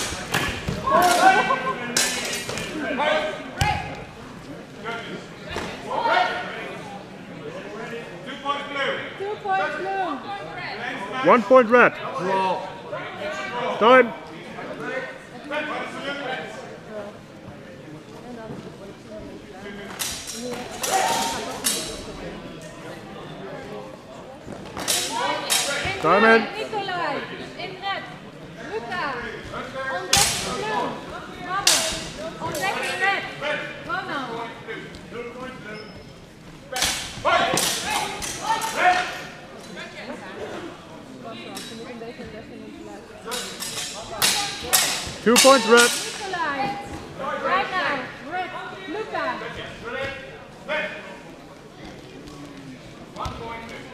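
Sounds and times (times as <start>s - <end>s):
people shouting: 20.8s - 21.5s
swords clashing: 43.3s - 46.2s.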